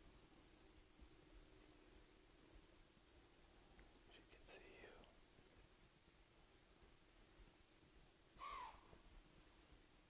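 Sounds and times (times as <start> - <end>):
faint whisper: 4.0 - 5.2.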